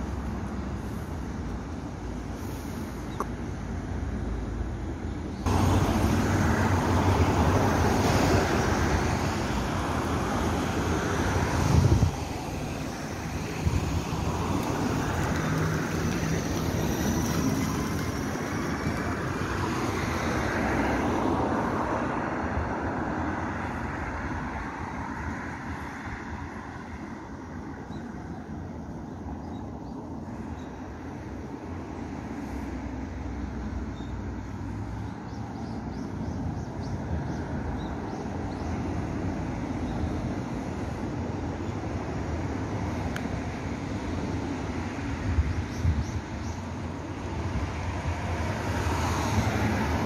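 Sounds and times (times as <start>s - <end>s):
bus tyre and road noise: 0.0s - 50.0s.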